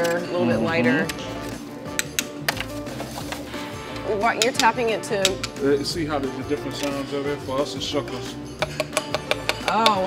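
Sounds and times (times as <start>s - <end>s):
background music: 0.0s - 10.0s
knife tapping oyster shells: 8.6s - 10.0s.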